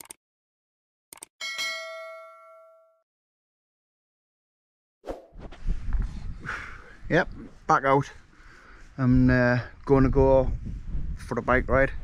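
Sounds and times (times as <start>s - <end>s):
quick clicks: 0.0s - 0.2s, 1.1s - 1.3s
bright bell ding: 1.4s - 3.0s
wind buffeting microphone: 5.5s - 8.1s, 8.8s - 12.0s.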